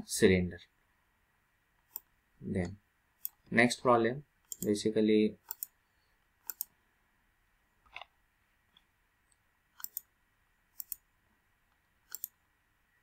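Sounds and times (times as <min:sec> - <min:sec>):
computer mouse button clicks: 0:12.1 - 0:12.3.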